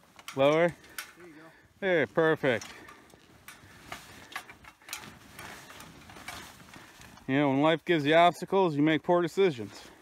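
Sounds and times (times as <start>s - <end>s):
metal ladder clicking and rattling: 0.0s - 1.4s, 2.2s - 7.4s
soft rustling: 0.0s - 8.6s
footsteps crunching snow: 0.0s - 10.0s.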